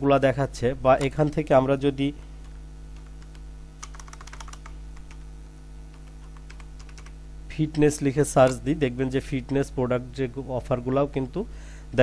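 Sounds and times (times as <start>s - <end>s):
low electrical hum: 0.0s - 12.0s
computer keyboard key clicks: 3.0s - 5.2s, 5.9s - 7.1s.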